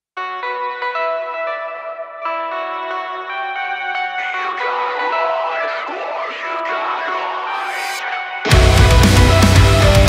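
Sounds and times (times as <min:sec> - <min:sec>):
picked electric guitar notes: 0:00.2 - 0:10.0.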